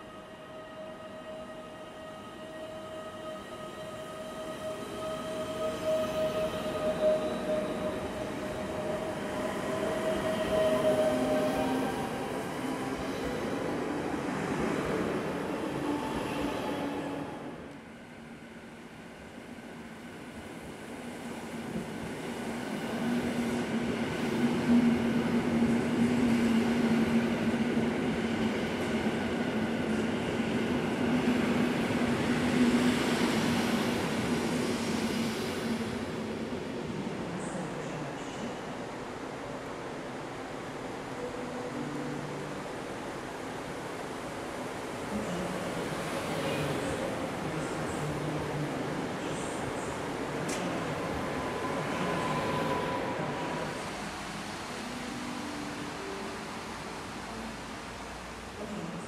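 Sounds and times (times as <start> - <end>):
electric train whine: 0.0 - 19.0, 40.1 - 59.0
electric train passing hum: 0.0 - 59.0.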